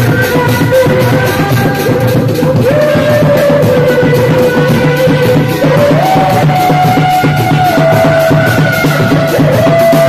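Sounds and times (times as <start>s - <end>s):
fast frame drum beating: 0.0s - 10.0s
high reed horn melody: 0.0s - 10.0s.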